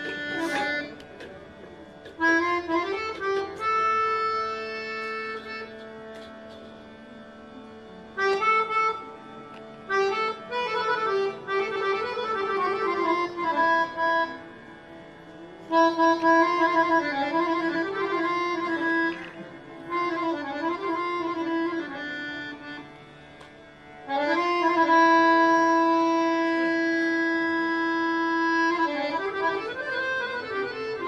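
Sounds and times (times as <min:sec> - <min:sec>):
harmonium playing ornamented runs: 0:00.0 - 0:31.0.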